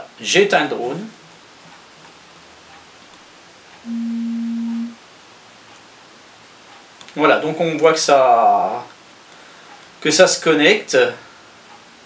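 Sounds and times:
low electronic beep: 3.9s - 5.0s.

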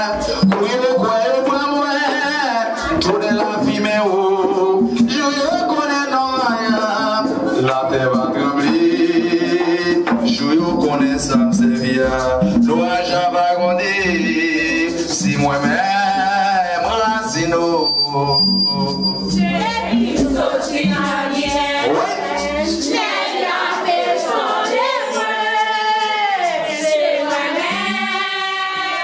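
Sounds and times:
hand drums: 0.0s - 29.0s
voices singing a chant: 0.0s - 29.0s
shaken rattle: 19.8s - 29.0s.

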